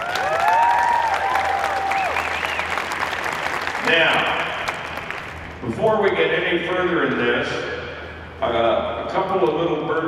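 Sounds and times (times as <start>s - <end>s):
whooping cheers: 0.0s - 3.0s
audience applauding: 0.0s - 5.6s.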